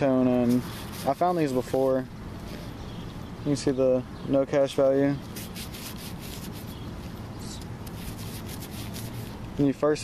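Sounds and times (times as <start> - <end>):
fingers rubbing metal token: 0.4 - 1.8, 5.3 - 6.8, 7.9 - 9.4.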